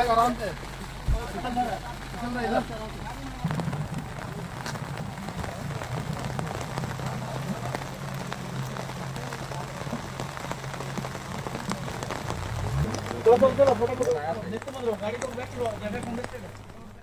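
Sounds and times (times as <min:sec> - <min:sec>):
heavy rain hiss and patter: 0:00.0 - 0:17.0.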